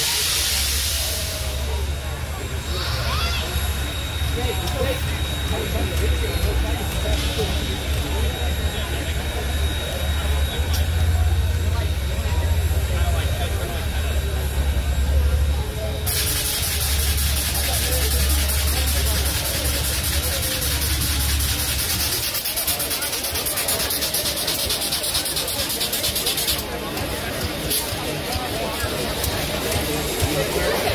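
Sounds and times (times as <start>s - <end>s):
steady low rumble: 0.0s - 22.4s
crowd chatter: 0.0s - 30.9s
steam hissing from locomotive: 0.0s - 30.9s.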